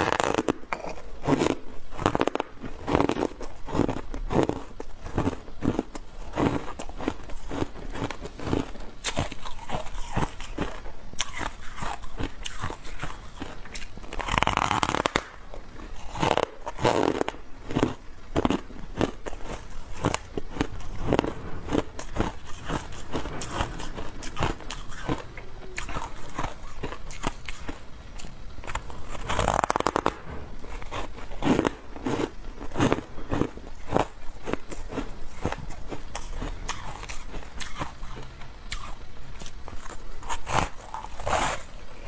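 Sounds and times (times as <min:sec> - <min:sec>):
ice crunching while chewed: 0:00.0 - 0:42.0.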